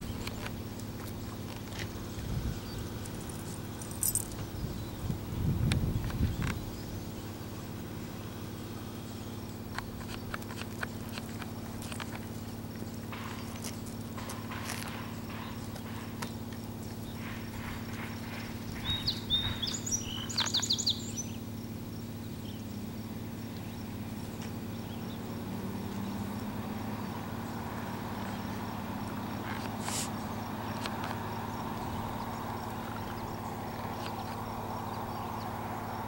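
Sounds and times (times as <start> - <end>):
bird chirping: 1.1 - 36.0.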